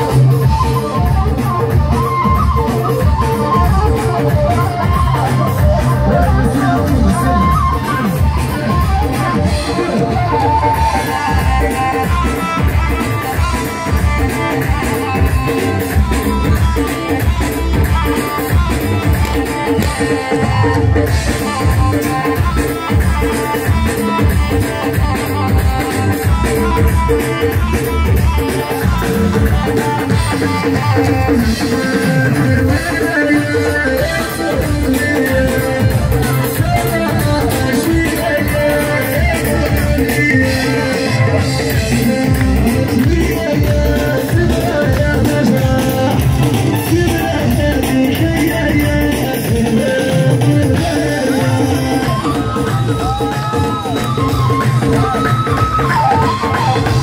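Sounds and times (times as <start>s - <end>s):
live band music over pa: 0.0s - 57.0s.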